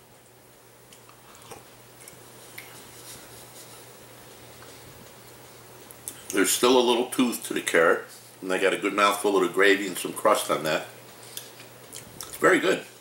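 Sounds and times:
steady low hum: 0.0s - 13.0s
faint chewing: 0.2s - 5.2s, 5.8s - 6.4s, 11.1s - 12.4s.

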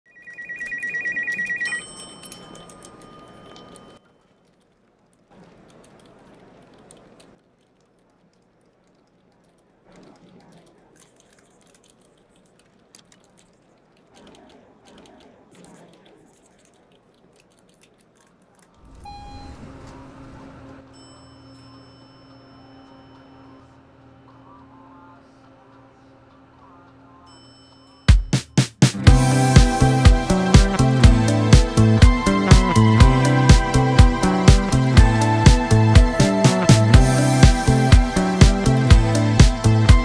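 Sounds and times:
desk telephone ringing: 0.1s - 4.0s
brief clear tone: 18.9s - 24.9s.

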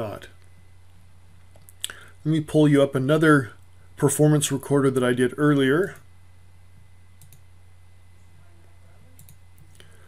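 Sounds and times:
steady low hum: 0.0s - 10.0s
computer mouse clicking: 7.2s - 7.4s, 9.2s - 9.8s.

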